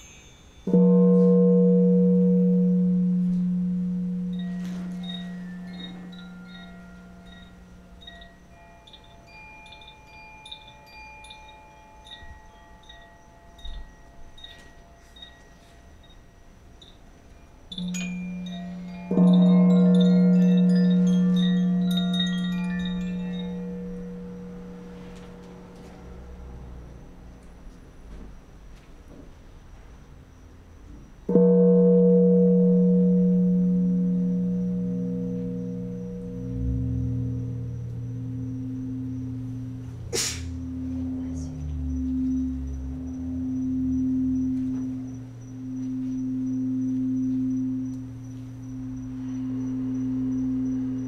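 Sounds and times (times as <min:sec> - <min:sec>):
singing bowl ringing: 0:00.0 - 0:27.4, 0:31.3 - 0:51.0
bar chimes tinkling: 0:00.0 - 0:28.1, 0:30.2 - 0:51.0.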